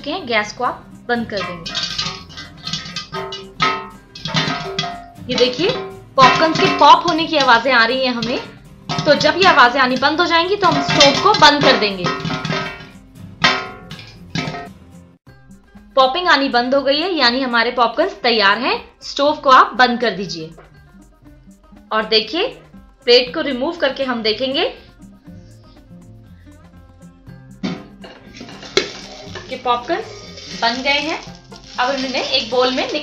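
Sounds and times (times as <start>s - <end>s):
background music: 0.0s - 33.0s
metal lid scraping: 1.2s - 14.8s, 27.6s - 33.0s
struck guitar chords ringing: 1.2s - 14.9s
plucked guitar: 1.2s - 15.2s, 27.5s - 33.0s
metal lid clank: 1.3s - 14.8s, 27.6s - 33.0s.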